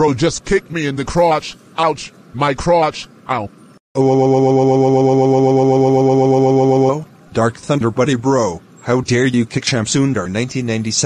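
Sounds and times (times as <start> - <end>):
synthetic voice droning: 4.0 - 7.2.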